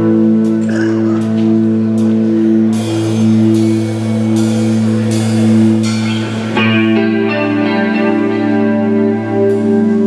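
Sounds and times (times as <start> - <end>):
electric guitar line: 0.0 - 10.0
live rock band playing: 0.0 - 10.0.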